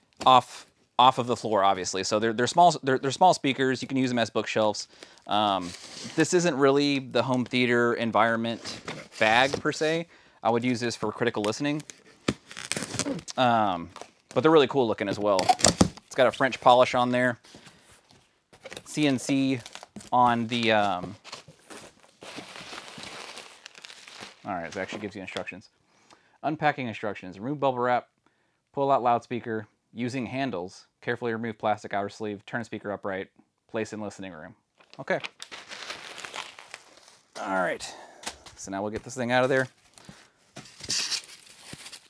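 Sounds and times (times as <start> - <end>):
bubble wrap rustling and crinkling: 5.3 - 7.7, 11.3 - 14.5, 17.9 - 25.1, 34.8 - 37.6, 39.4 - 42.0
foam packing rubbing: 5.6 - 6.4.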